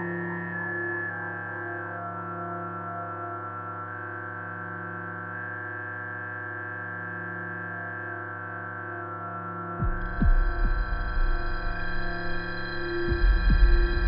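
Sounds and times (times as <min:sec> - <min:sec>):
ambient drone music: 0:00.0 - 0:14.0.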